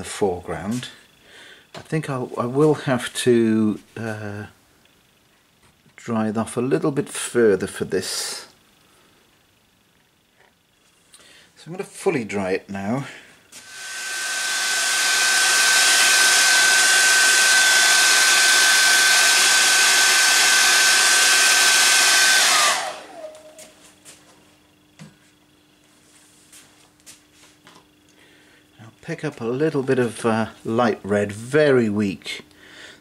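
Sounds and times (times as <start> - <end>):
hair dryer blowing: 13.5 - 23.8.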